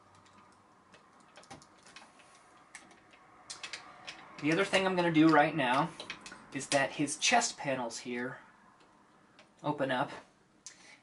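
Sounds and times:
toy robot parts clicking: 0:00.2 - 0:04.7.

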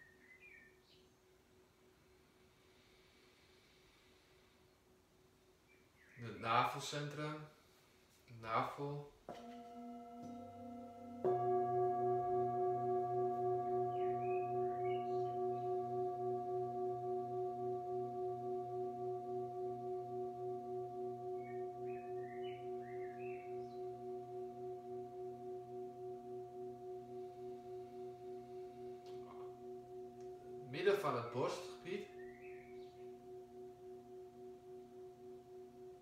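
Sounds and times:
singing bowl ringing: 0:09.3 - 0:36.0.

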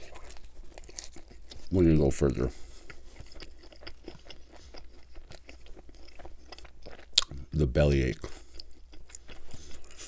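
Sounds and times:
pizza being chewed: 0:00.0 - 0:10.0.

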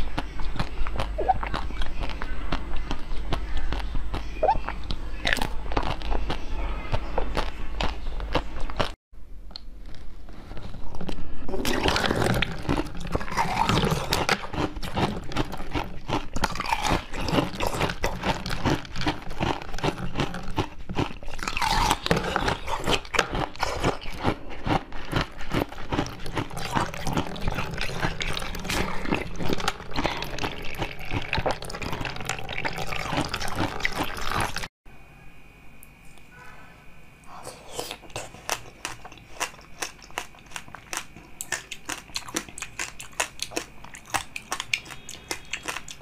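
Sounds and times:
wet mouth sounds: 0:00.0 - 0:09.0, 0:11.6 - 0:34.7
crunching frozen ice: 0:09.9 - 0:34.7.

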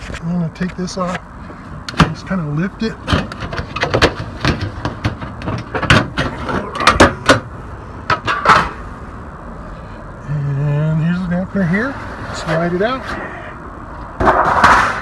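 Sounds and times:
sheet metal knocking and scraping: 0:03.0 - 0:07.5.

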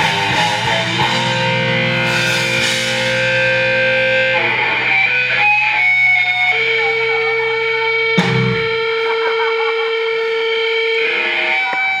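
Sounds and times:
rock band with distorted guitars: 0:00.0 - 0:12.0
sharp drum hit: 0:08.2 - 0:08.9.

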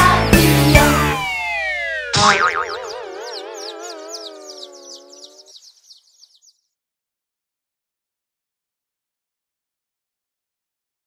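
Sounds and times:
rapid high twittering chirps: 0:00.0 - 0:06.8
warbling wobbling tone: 0:01.2 - 0:05.4.

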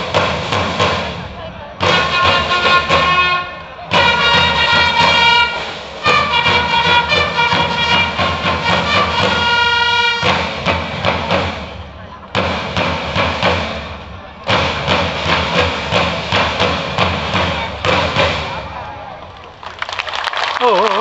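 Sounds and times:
marching drums: 0:00.0 - 0:19.7.

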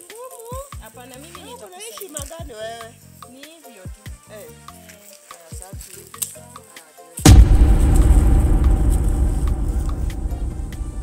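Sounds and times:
boom sound effect: 0:07.3 - 0:11.0
loud low rumble: 0:07.3 - 0:11.0.

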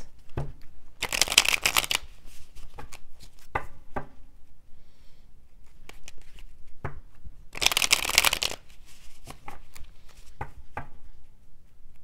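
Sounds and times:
cards clicking: 0:01.0 - 0:02.1, 0:05.8 - 0:06.4, 0:07.6 - 0:08.6
cards shuffling: 0:01.0 - 0:03.5, 0:05.6 - 0:06.5, 0:07.6 - 0:10.3.

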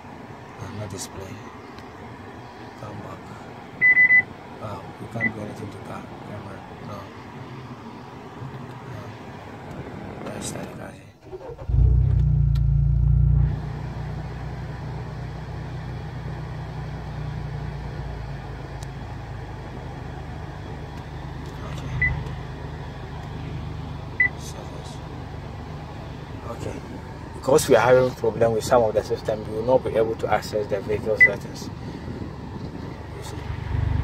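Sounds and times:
car engine starting and idling: 0:09.6 - 0:34.0.

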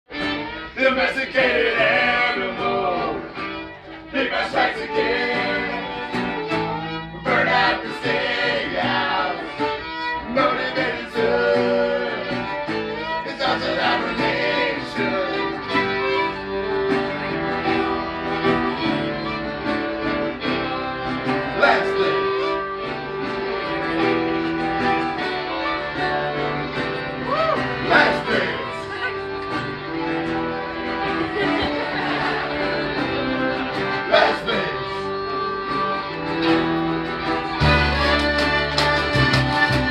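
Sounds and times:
accordion: 0:00.1 - 0:39.9
fiddle: 0:00.1 - 0:39.9
strummed guitar: 0:00.1 - 0:39.9
upright bass: 0:00.1 - 0:39.9
band singing along: 0:00.7 - 0:15.6, 0:21.3 - 0:22.5, 0:27.3 - 0:28.9, 0:30.8 - 0:35.3.

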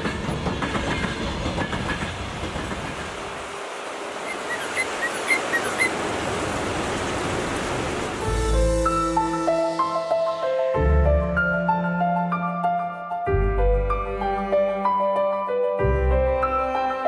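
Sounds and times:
wheels clattering over rail joints: 0:00.0 - 0:06.0
freight train wagons rolling: 0:00.0 - 0:08.2
fast-flowing river rushing: 0:03.1 - 0:08.3.

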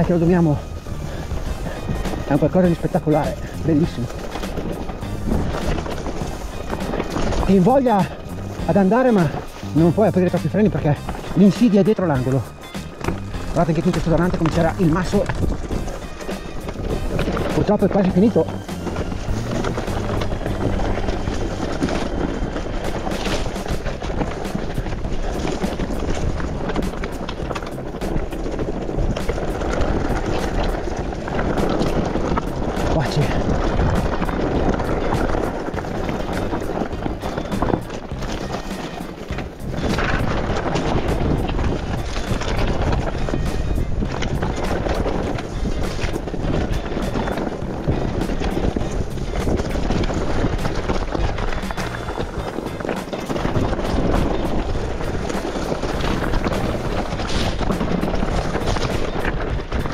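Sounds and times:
background music: 0:00.0 - 0:59.9
bike clicking and knocking over bumps: 0:00.0 - 0:59.9
mountain bike riding on dirt trail: 0:00.0 - 0:59.9.

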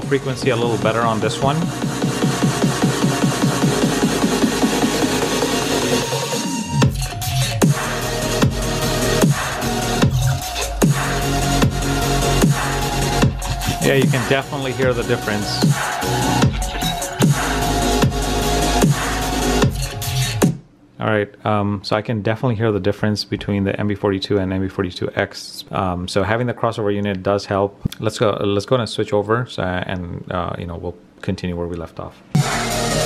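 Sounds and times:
electronic dance music: 0:00.0 - 0:20.6, 0:32.4 - 0:33.0
deep bass note: 0:07.8 - 0:19.9.

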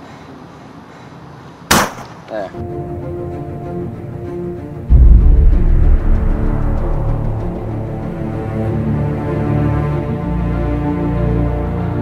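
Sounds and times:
faint outdoor background noise: 0:00.0 - 0:12.0
loud sharp gunshot: 0:01.7 - 0:02.1, 0:04.9 - 0:08.5.

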